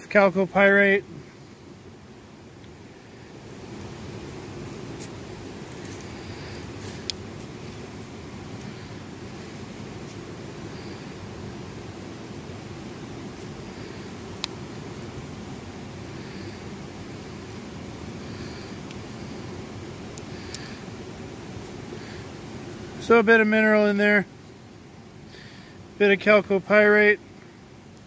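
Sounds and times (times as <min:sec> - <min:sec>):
river rushing: 0:00.0 - 0:27.7.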